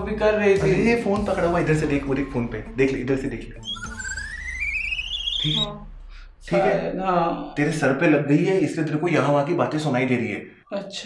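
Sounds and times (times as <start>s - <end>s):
warbling whistle rising in pitch: 3.5s - 5.9s.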